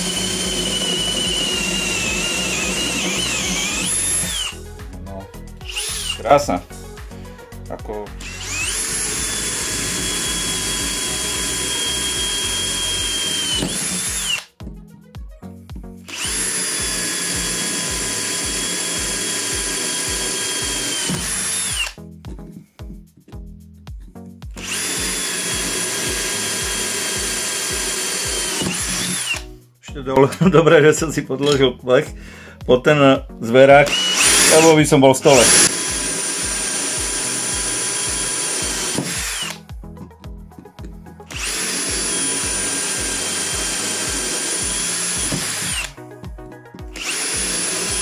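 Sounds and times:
drill drilling into steel: 0.0 - 4.6, 5.6 - 6.4, 8.1 - 14.5, 16.1 - 22.0, 24.6 - 29.5, 33.8 - 39.7, 41.3 - 46.0, 46.8 - 48.0.

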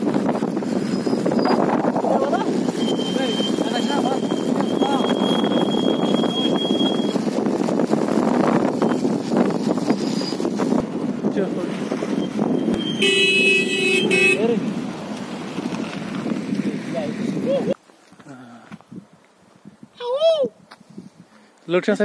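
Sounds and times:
vehicle horn honking: 12.8 - 14.6.

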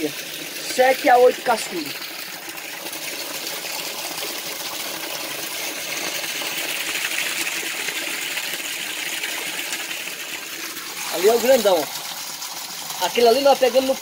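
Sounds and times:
hose water splashing into tank: 0.0 - 14.0.

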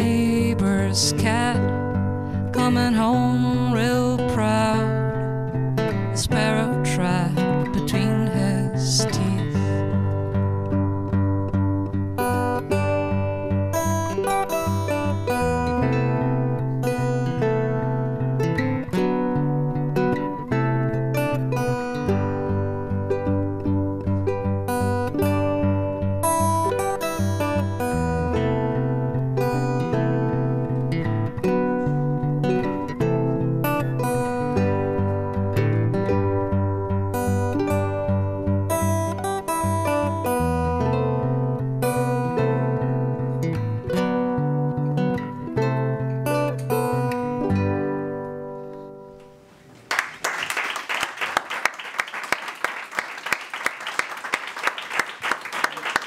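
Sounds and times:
small plucked string instrument: 0.0 - 49.4
acoustic guitar: 0.0 - 50.2
audience clapping: 49.6 - 56.0.

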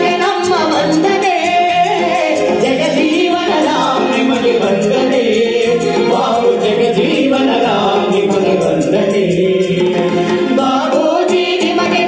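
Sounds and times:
amplified backing music: 0.0 - 12.0
people singing into microphones: 0.0 - 12.0.

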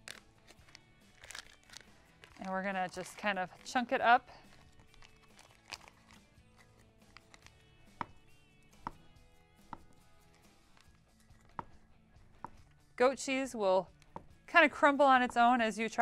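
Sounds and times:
faint background music: 0.0 - 16.0.

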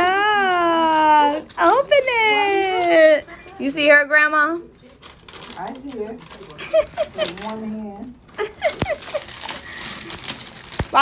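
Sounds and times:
paper bag and tissue crinkling: 0.0 - 3.8, 4.8 - 11.0.

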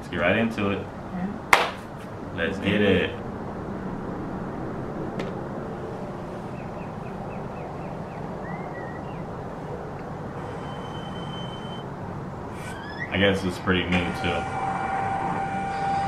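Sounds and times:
city traffic rumble: 0.0 - 16.0
faint high chirps: 10.4 - 11.9
thin high steady tone: 10.4 - 11.9.

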